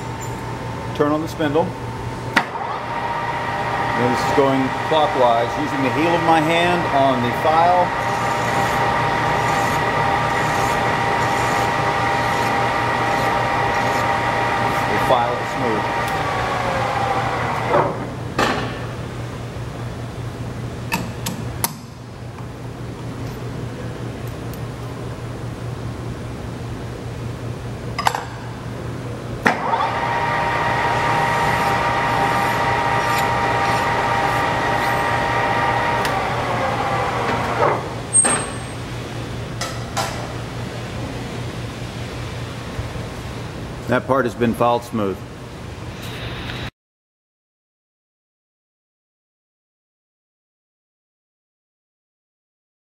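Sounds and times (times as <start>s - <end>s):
steady low hum: 0.0s - 16.8s
lathe spindle whining: 2.5s - 18.0s, 29.5s - 38.2s.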